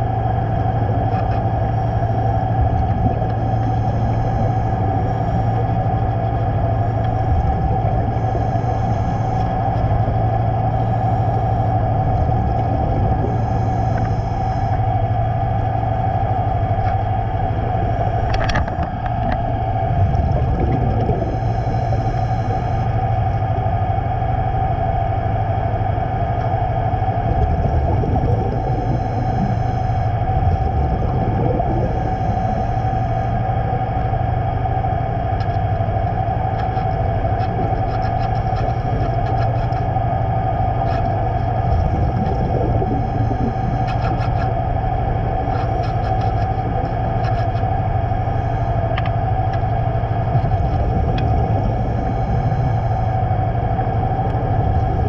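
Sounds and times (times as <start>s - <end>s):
underwater mechanical hum: 0.0s - 55.0s.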